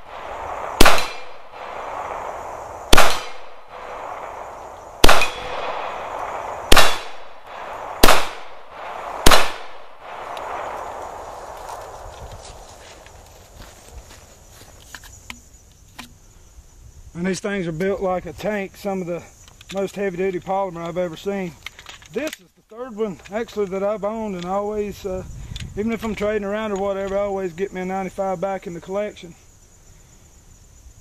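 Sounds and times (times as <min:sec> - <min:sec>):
pistol shots: 0:00.0 - 0:10.9.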